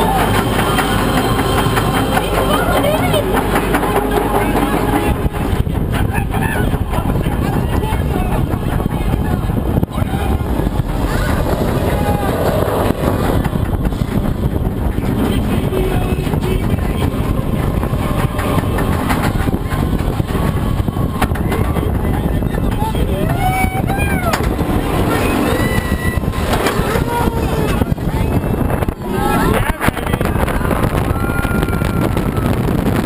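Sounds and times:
roller coaster chain lift rattle: 0:00.0 - 0:33.0.

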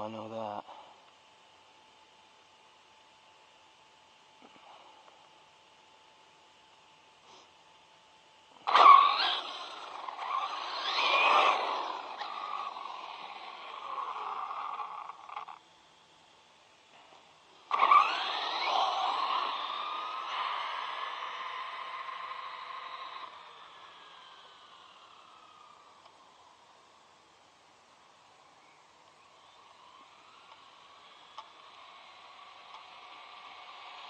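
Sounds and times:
electric toy truck motor whine: 0:08.5 - 0:34.0.

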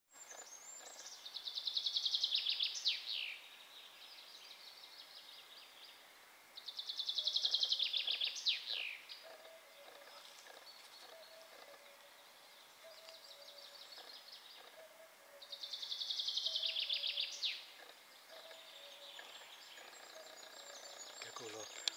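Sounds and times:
faint birdsong trills: 0:00.1 - 0:21.9
songbird singing loud phrases: 0:00.2 - 0:21.9.

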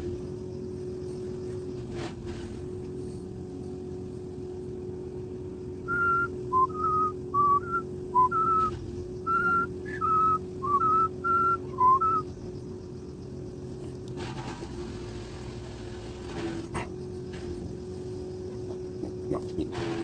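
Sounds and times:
steady low hum: 0:00.0 - 0:20.0
person whistling a tune: 0:05.9 - 0:08.7, 0:09.3 - 0:12.2.

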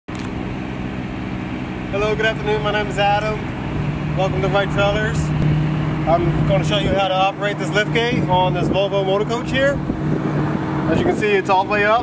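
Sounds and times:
diesel engine idling: 0:00.1 - 0:12.0.

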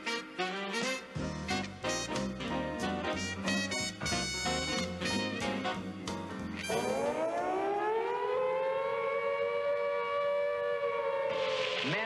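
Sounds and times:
swing band music: 0:00.0 - 0:07.1
air-raid siren wailing: 0:06.6 - 0:12.0.

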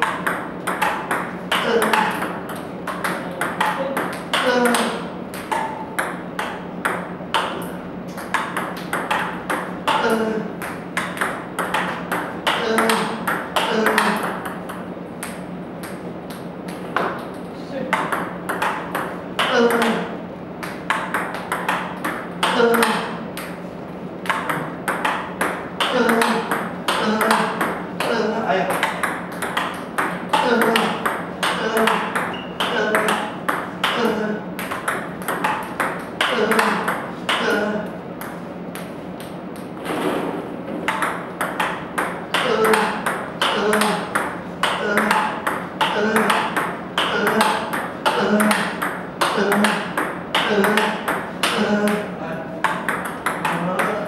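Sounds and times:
table tennis ball clicks: 0:00.0 - 0:23.6, 0:24.2 - 0:28.1, 0:28.7 - 0:37.6, 0:40.8 - 0:52.0, 0:52.6 - 0:54.0.

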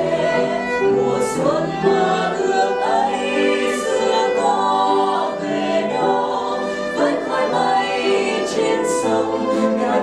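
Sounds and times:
upright piano: 0:00.0 - 0:10.0
violin: 0:00.0 - 0:10.0.

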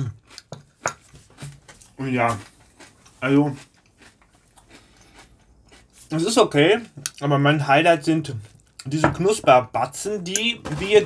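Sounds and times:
person chewing cereal: 0:00.0 - 0:07.3, 0:08.2 - 0:08.9.

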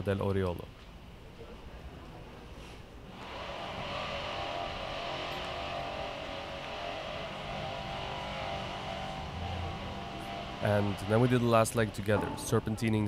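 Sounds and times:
vehicle engine hum: 0:03.1 - 0:13.0.

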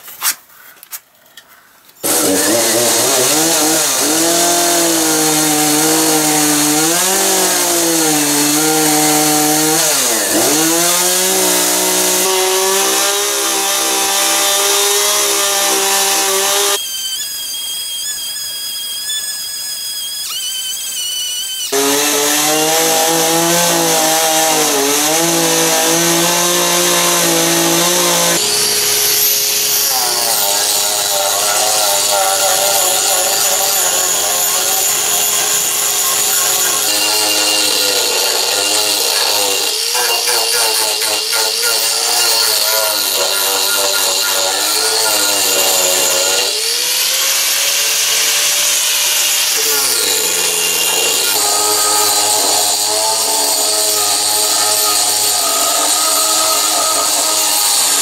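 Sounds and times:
chainsaw cutting wood: 0:02.0 - 0:16.8, 0:21.5 - 0:58.0
angle grinder whine: 0:02.0 - 0:58.0
high-pitched tool whine: 0:02.0 - 0:58.0.

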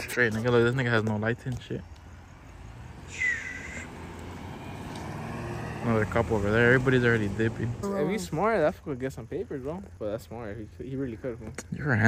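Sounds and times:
rumble of vehicles on street: 0:00.0 - 0:12.0
short harsh call: 0:03.1 - 0:03.9.

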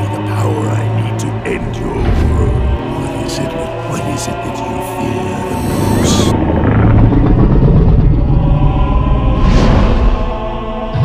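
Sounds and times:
monster rumbling growl: 0:01.5 - 0:11.0.

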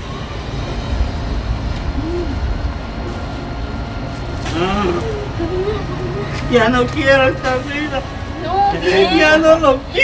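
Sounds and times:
steady low rumble: 0:00.0 - 0:10.0
person giving hoot-like moans: 0:02.0 - 0:02.4.

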